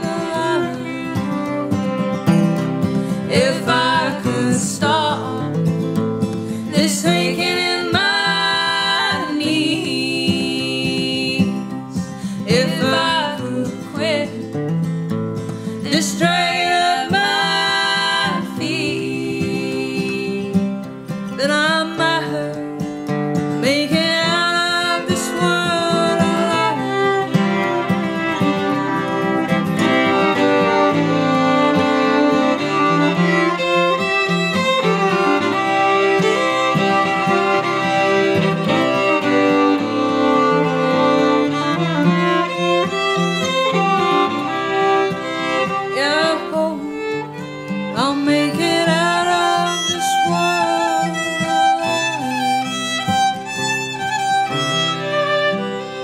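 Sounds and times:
women singing in harmony: 0:00.0 - 0:01.6, 0:03.1 - 0:05.6, 0:06.7 - 0:14.5, 0:15.8 - 0:20.7, 0:21.4 - 0:22.6, 0:23.6 - 0:27.2, 0:45.9 - 0:47.1, 0:47.9 - 0:53.1
fiddles playing: 0:00.0 - 0:14.4, 0:15.5 - 0:20.6, 0:23.6 - 0:56.0
acoustic guitar strumming: 0:00.0 - 0:56.0.

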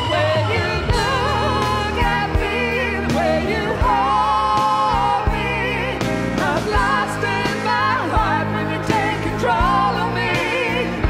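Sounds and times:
bass: 0:00.0 - 0:11.0
drums: 0:00.0 - 0:11.0
lead vocal singing with vibrato: 0:00.0 - 0:11.0.

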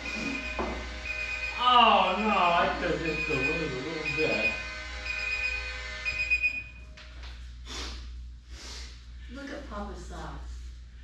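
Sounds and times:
electronic alarm beeping: 0:00.0 - 0:06.8.

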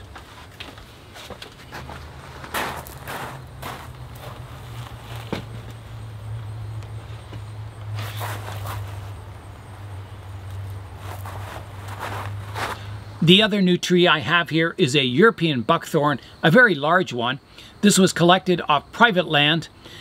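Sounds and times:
steady low hum: 0:00.0 - 0:16.5
footsteps on gravel: 0:00.1 - 0:05.8, 0:08.0 - 0:09.2, 0:10.5 - 0:12.9.

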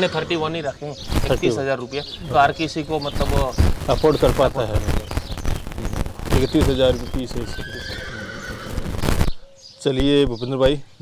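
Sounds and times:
horse neighing: 0:00.0 - 0:00.7, 0:07.4 - 0:08.8
people's voices: 0:00.0 - 0:08.3.

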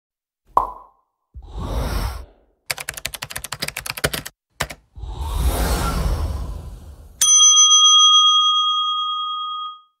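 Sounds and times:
bright bell ding: 0:07.2 - 0:10.0.

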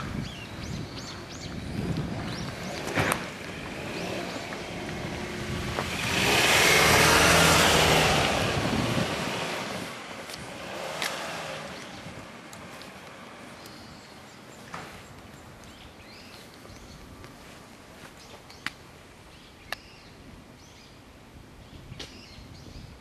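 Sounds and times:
vehicle passing by: 0:01.0 - 0:13.6
small sharp clicks: 0:19.7 - 0:19.9.

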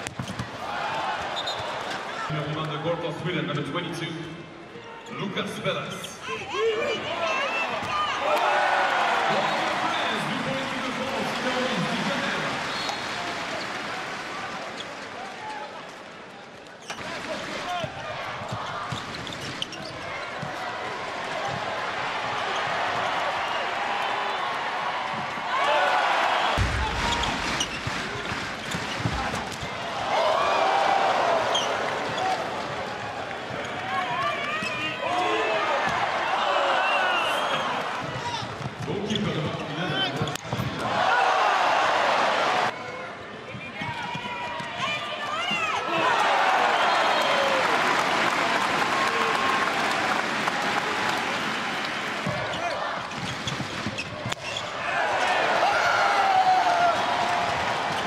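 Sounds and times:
handball bouncing on indoor court: 0:00.0 - 0:02.0, 0:16.8 - 0:21.7, 0:26.6 - 0:30.0, 0:38.0 - 0:40.9, 0:52.2 - 0:54.7
arena crowd noise: 0:00.0 - 0:58.0.

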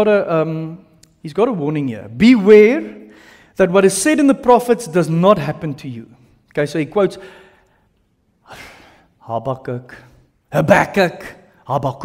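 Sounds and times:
man speaking: 0:00.0 - 0:07.3, 0:09.2 - 0:12.0.

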